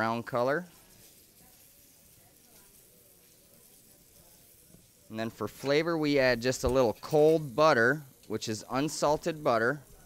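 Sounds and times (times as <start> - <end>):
fish fillets sizzling in a pan: 0.0 - 10.0.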